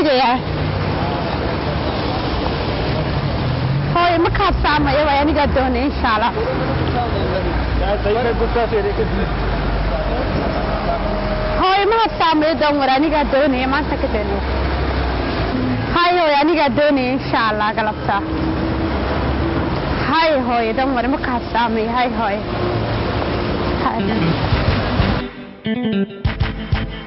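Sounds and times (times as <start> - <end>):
tyres hissing on wet road: 0.0 - 25.2
car engine hum: 0.0 - 25.3.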